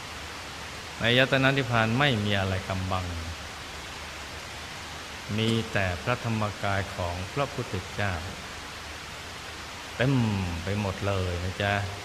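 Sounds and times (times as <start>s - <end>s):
background hiss: 0.0s - 12.0s
man's voice: 1.0s - 3.4s, 5.3s - 8.4s, 10.0s - 12.0s.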